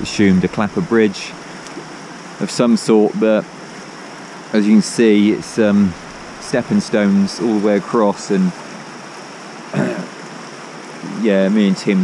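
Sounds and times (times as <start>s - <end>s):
river rushing over rocks: 0.0s - 12.0s
person clearing throat: 9.7s - 10.2s.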